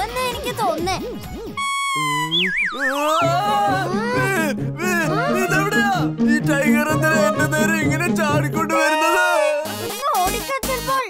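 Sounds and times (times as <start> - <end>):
warbling electronic tone: 1.0 - 3.4.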